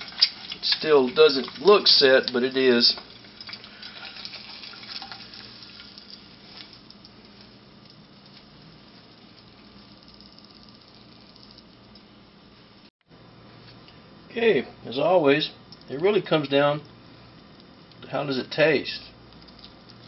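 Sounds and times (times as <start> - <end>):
oil sizzling in a frying pan: 0.0 - 11.6.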